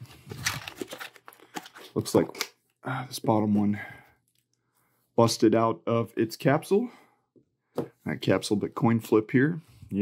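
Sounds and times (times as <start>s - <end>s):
cardboard and plastic rustling: 0.0s - 2.2s.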